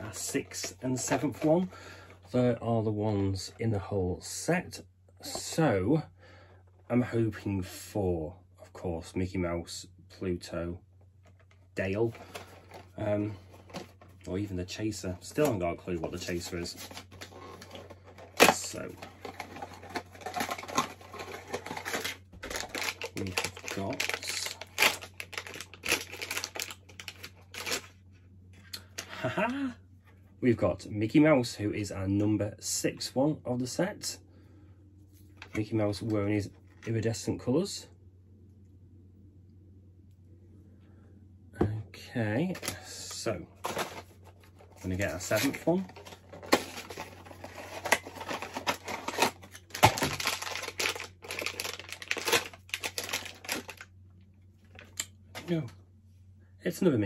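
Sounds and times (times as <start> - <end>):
foil wrapper crinkling: 16.1 - 28.0, 43.6 - 53.9.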